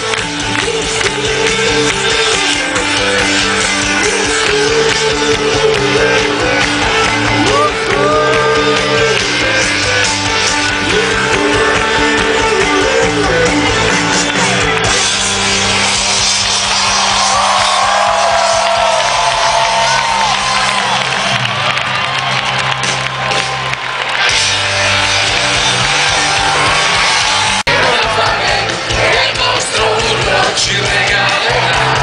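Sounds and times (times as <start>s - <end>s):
sustained bass notes: 0.0s - 19.3s, 20.5s - 32.0s
live rock band through loudspeakers: 0.0s - 32.0s.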